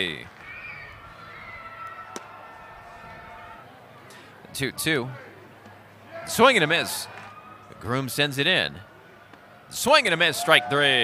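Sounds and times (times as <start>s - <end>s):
faint crowd murmur: 0.0s - 11.0s.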